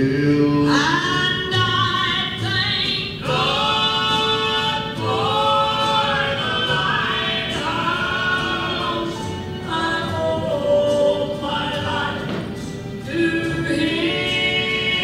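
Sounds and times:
voices singing gospel in harmony: 0:00.0 - 0:15.0.

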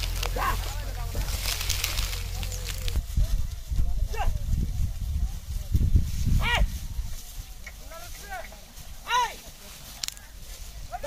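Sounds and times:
cart rumbling over field: 0:00.0 - 0:11.0.

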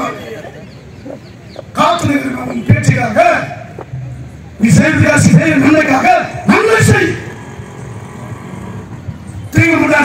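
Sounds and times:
vehicle engine running: 0:00.6 - 0:10.0.

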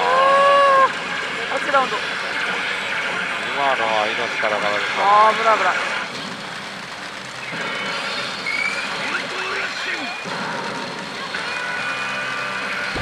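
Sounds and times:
pachinko parlour din: 0:00.0 - 0:13.0.

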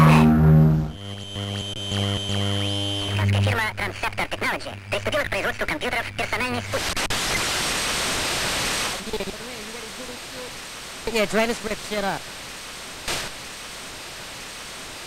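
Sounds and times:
held synth chord over bass: 0:00.0 - 0:03.5
white-noise hiss: 0:00.0 - 0:15.0.

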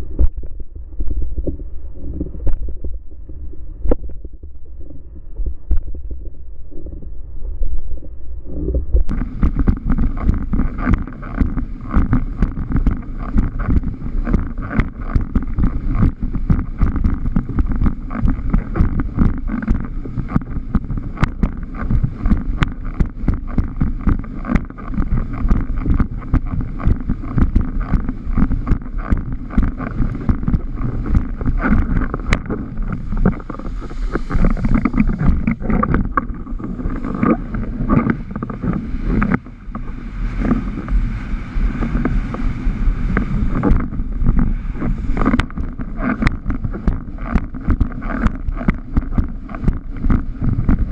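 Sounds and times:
wind buffeting microphone: 0:00.0 - 0:50.9
board slapping on water: 0:09.1 - 0:50.9
rushing water: 0:09.1 - 0:50.9.

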